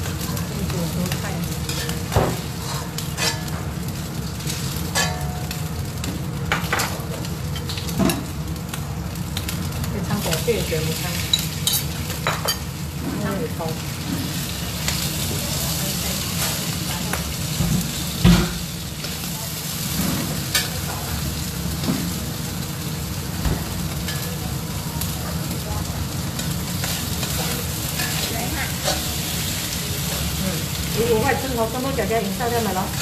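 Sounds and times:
prawns sizzling in hot oil: 0.0 - 33.0
metal spatula scraping a wok: 1.6 - 3.8, 4.5 - 5.4.

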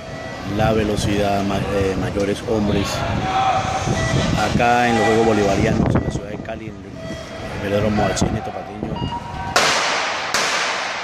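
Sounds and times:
starter's gun shots ringing: 9.5 - 11.0.

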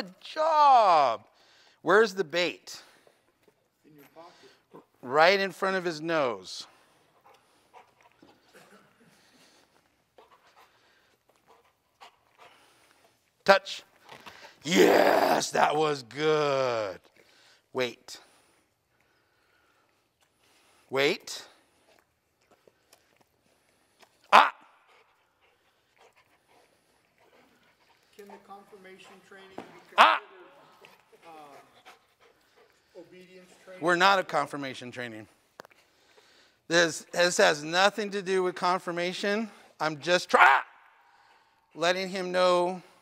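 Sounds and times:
dog panting faintly: 6.6 - 14.6, 18.2 - 36.7
dog barking: 24.3 - 24.6, 30.0 - 30.3, 40.4 - 40.7.

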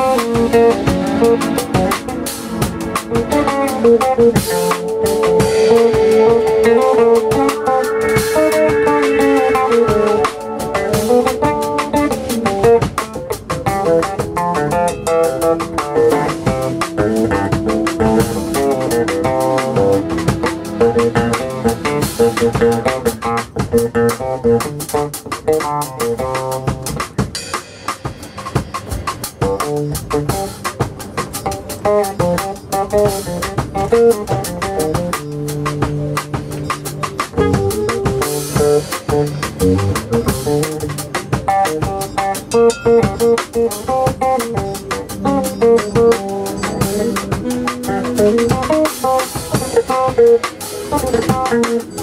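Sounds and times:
electric bass plucked: 0.0 - 27.2, 31.4 - 52.0
drum kit and cymbal hits: 0.0 - 52.0
long held high notes: 1.0 - 13.2, 13.8 - 23.1.

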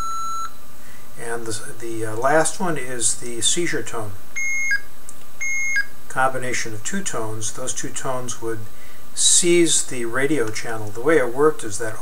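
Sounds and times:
two-tone electronic beep: 0.0 - 0.6, 4.4 - 5.9.

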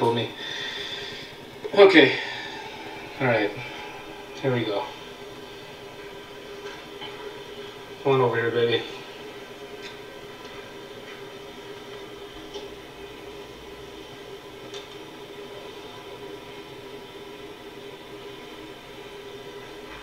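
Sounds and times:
steady background hum: 0.0 - 20.0.

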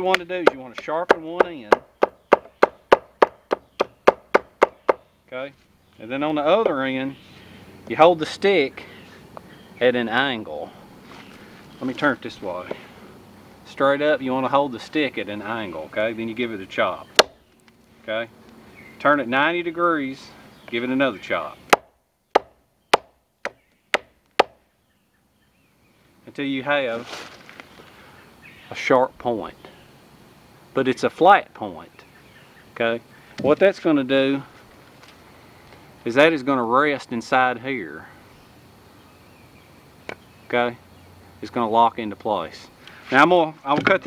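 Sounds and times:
machete chopping wooden stick: 0.1 - 5.0, 17.2 - 17.4, 21.7 - 24.6.

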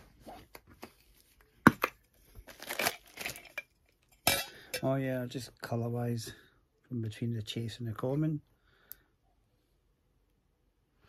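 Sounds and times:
small hard objects clattering: 1.6 - 4.9.

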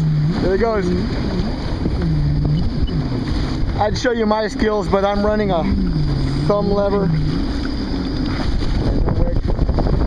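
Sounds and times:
jet ski engine running: 0.0 - 10.0
water splashing against hull: 0.0 - 10.0
wind buffeting microphone: 0.0 - 10.0.

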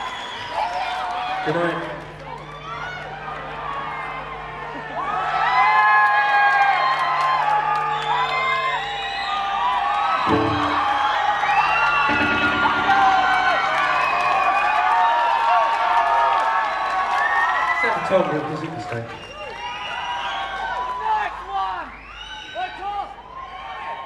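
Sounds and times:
concert crowd cheering and whistling: 0.0 - 24.0
held low note from stage: 10.2 - 14.6.

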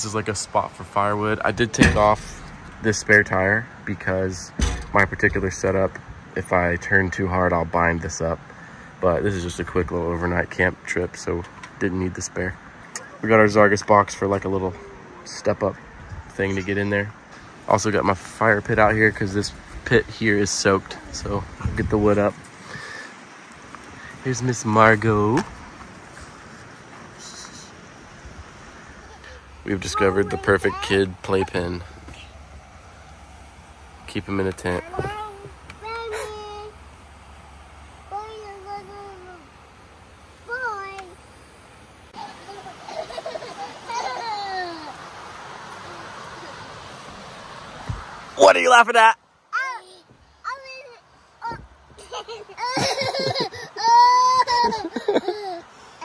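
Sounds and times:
wind rumbling on microphone: 21.0 - 22.4
children laughing and squealing: 35.8 - 36.8, 42.1 - 46.8, 51.5 - 56.0.

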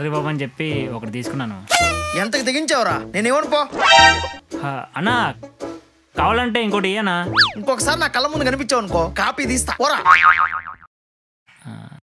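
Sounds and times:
cartoon boing twang: 10.1 - 10.9.

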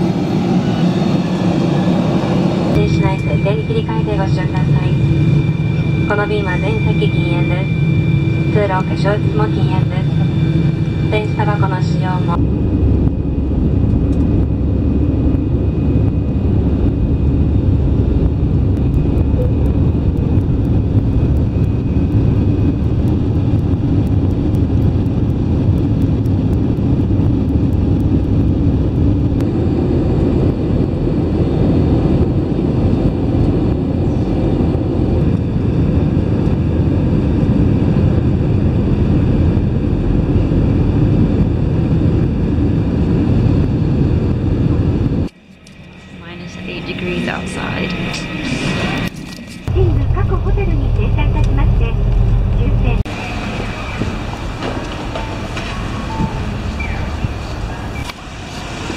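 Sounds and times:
jet engines and rushing air: 0.0 - 58.9.

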